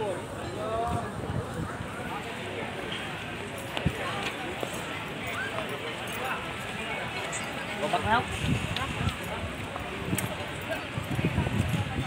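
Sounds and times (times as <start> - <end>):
background hubbub: 0.0 - 12.0
indistinct talk of people: 0.0 - 12.0.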